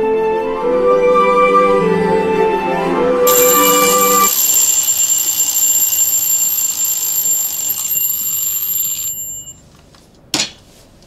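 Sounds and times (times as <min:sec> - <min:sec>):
music: 0:00.0 - 0:03.3
alarm clock ringing: 0:03.3 - 0:09.6.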